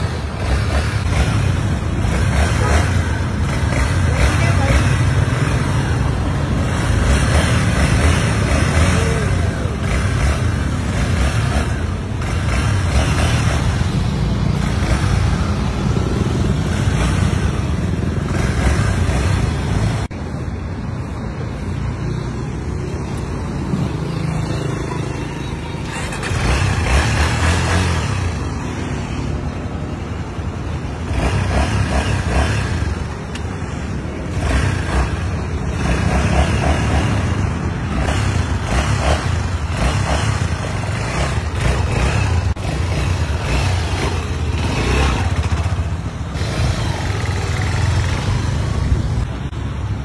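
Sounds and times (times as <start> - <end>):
motorcycle engine running: 0.0 - 20.1, 30.9 - 49.5.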